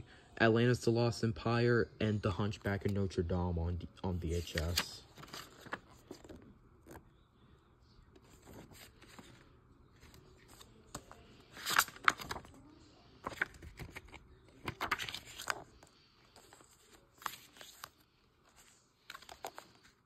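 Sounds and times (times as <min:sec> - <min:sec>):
paper cards rustling: 0:04.1 - 0:07.0, 0:08.2 - 0:12.6, 0:13.2 - 0:20.0
paper crinkles: 0:08.2 - 0:12.6, 0:13.2 - 0:20.0.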